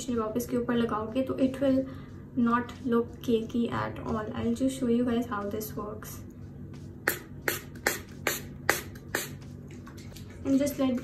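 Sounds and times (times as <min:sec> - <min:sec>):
spray bottle hissing: 0:07.0 - 0:09.5.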